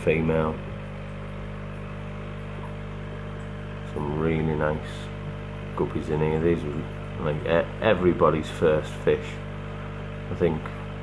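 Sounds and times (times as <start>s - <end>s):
aquarium air pump humming: 0.0s - 11.0s.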